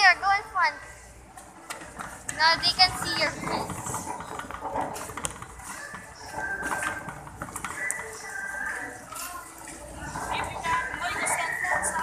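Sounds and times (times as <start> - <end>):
shoppers talking indistinctly: 0.0 - 12.0
store background noise: 0.0 - 12.0.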